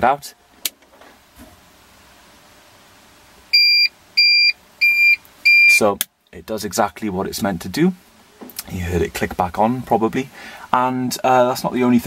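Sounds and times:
short high beeps: 0:03.5 - 0:05.8.

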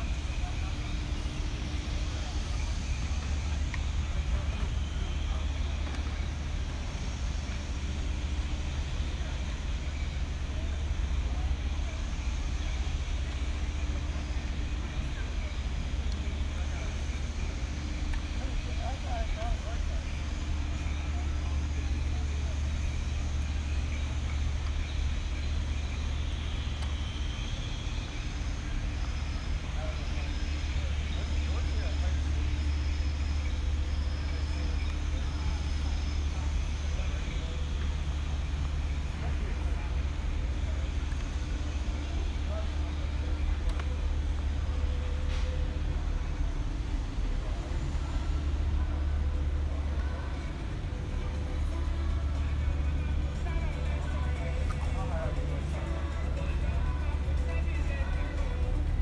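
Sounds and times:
faint voices of people: 0:00.0 - 0:59.0
steady low rumble: 0:00.0 - 0:59.0.

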